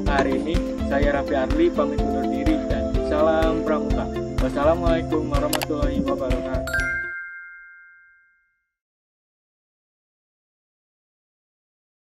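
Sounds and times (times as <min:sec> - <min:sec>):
background music with steady beat: 0:00.0 - 0:07.0
bright two-tone chime: 0:06.7 - 0:08.5.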